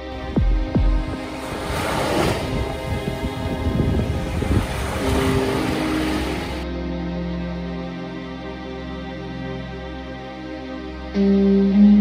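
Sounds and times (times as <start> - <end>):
soft music: 0.0 - 12.0
wind on microphone: 0.1 - 6.6
small waves washing on beach: 1.0 - 6.6.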